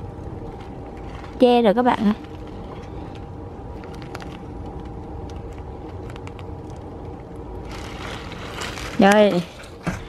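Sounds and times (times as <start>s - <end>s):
leafy greens rustling against wire cage: 0.0s - 4.6s, 7.6s - 10.0s
low mechanical hum: 0.0s - 10.0s.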